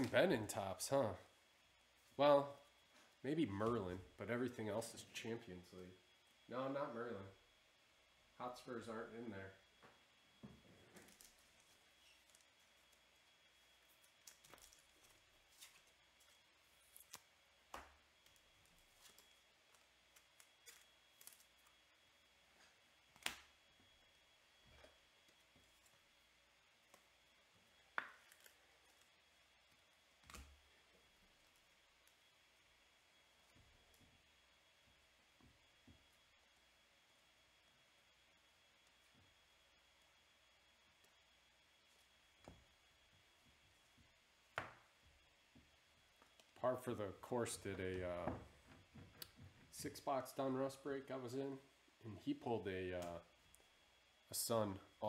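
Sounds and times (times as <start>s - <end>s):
baseball card packs being opened: 10.9s - 13.0s, 13.9s - 21.8s
cards being handled: 10.9s - 21.8s, 27.9s - 30.6s.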